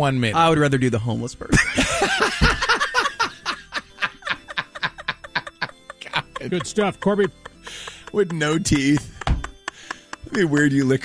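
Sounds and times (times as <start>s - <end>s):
men laughing: 1.5s - 11.0s.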